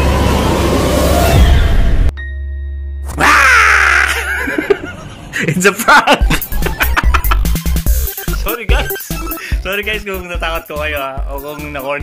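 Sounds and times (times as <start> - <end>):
harsh scream shriek: 3.1 - 4.3.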